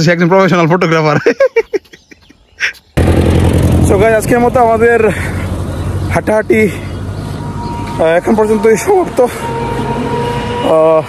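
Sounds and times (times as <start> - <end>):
road traffic rumble: 2.6 - 11.0.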